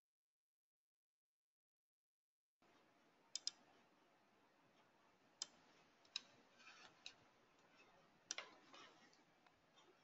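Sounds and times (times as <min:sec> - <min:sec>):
faint microphone hiss: 0:02.6 - 0:10.0
sharp clicks: 0:03.4 - 0:03.6.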